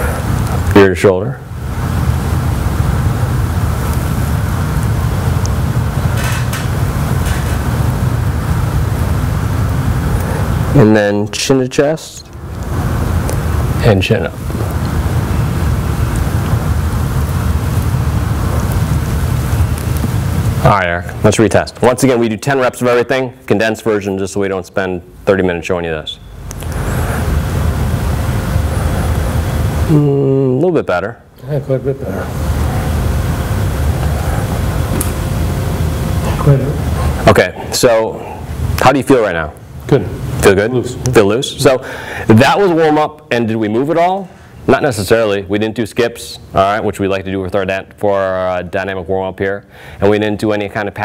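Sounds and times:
low hum with hiss: 0.0s - 51.0s
hiss: 26.6s - 30.2s.

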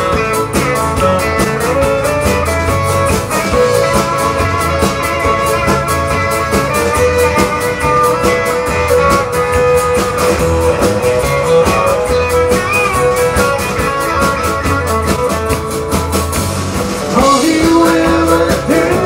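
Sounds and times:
acoustic and electric guitars: 0.0s - 19.0s
bass: 0.0s - 19.0s
drum kit steady beat: 0.0s - 19.0s.

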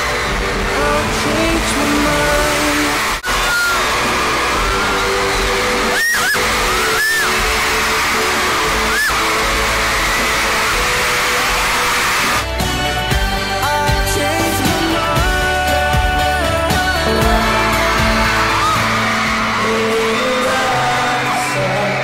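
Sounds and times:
amplified live pop music: 0.0s - 22.0s
crowd noise: 0.0s - 22.0s.

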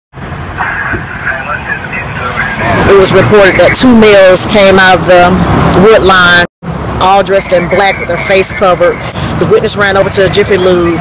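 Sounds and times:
traffic rumble: 0.1s - 11.0s.

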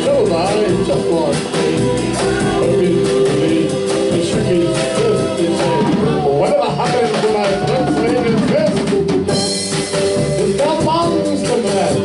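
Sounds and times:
saxophone holding long notes: 0.0s - 6.4s
rock band playing: 0.0s - 12.0s.

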